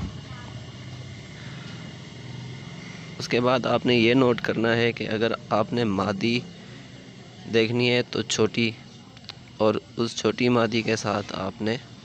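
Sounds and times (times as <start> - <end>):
low background hum and hiss: 0.0 - 12.0.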